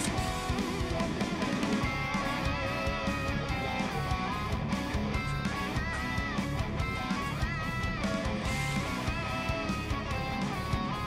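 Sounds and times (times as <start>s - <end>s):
electric guitar melody with bent notes: 0.0s - 11.0s
full band backing: 0.0s - 11.0s.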